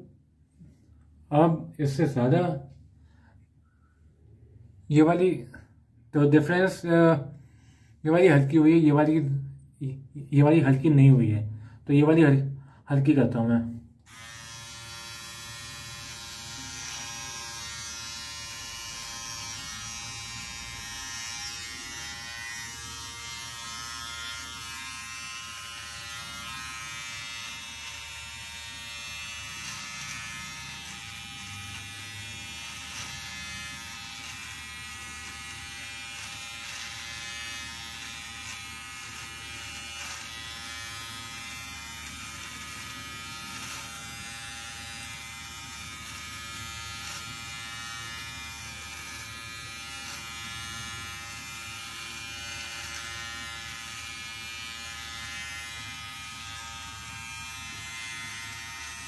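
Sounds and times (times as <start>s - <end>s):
electric beard trimmer buzzing: 14.0s - 59.0s.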